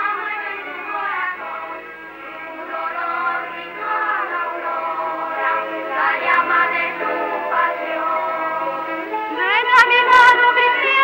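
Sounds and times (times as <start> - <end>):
group singing slow song: 0.9 - 9.7.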